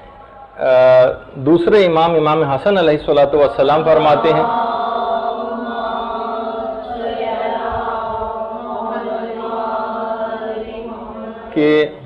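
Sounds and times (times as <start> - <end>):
voices chanting on one pitch: 3.3 - 12.0.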